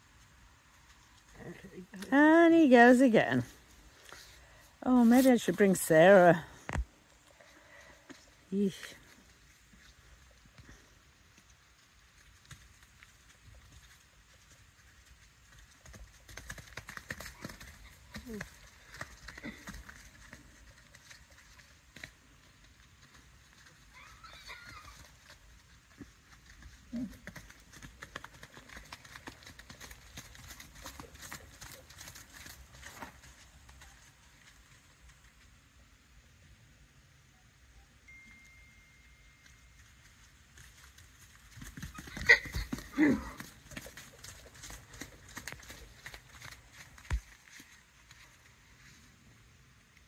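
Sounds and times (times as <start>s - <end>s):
horse hooves on muddy ground: 0.0s - 36.2s, 38.1s - 50.0s.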